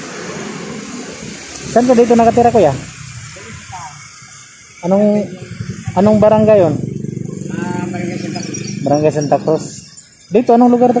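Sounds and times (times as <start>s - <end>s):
man talking: 1.7s - 2.9s, 4.8s - 11.0s
small engine running: 1.8s - 10.2s.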